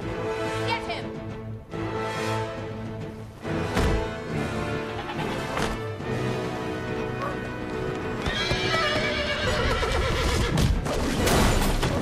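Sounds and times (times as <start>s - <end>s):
orchestral music: 0.0s - 12.0s
horse whinnying: 8.2s - 10.6s.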